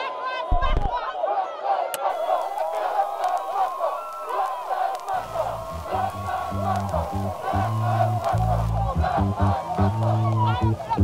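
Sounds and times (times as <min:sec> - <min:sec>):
crowd shouting and cheering: 0:00.0 - 0:11.0
low bass line: 0:05.6 - 0:11.0.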